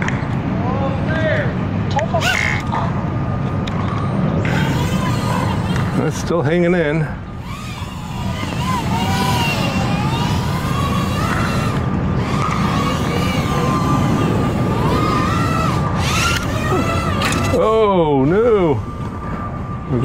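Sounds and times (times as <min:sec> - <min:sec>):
drone motors whining: 0:02.0 - 0:20.0.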